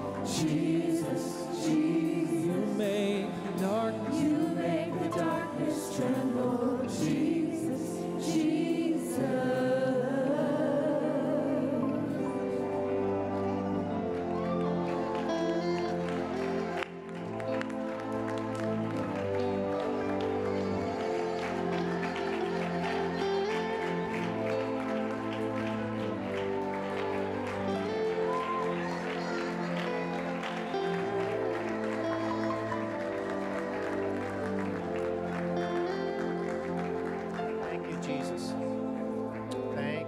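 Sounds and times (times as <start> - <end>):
electric keyboard sustained chords: 0.0 - 40.0.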